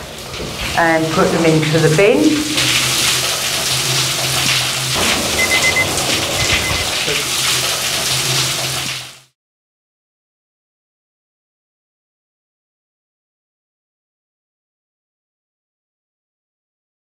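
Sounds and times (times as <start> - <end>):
shower water spraying: 0.0 - 9.4
low steady hum: 0.8 - 8.9.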